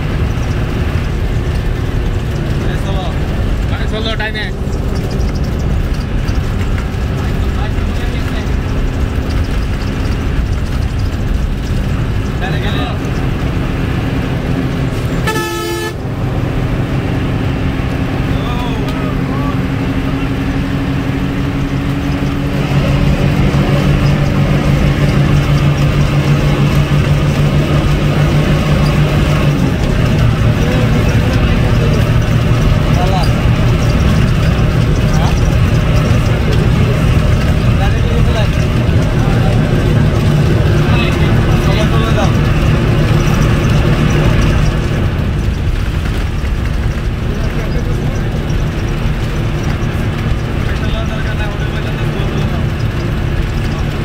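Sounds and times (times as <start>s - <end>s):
bus diesel engine under load: 0.0s - 54.0s
horn toot: 15.1s - 16.2s.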